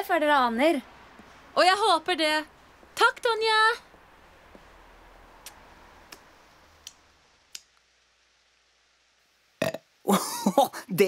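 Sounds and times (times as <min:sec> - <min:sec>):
cartoon character burping: 0:09.6 - 0:09.9.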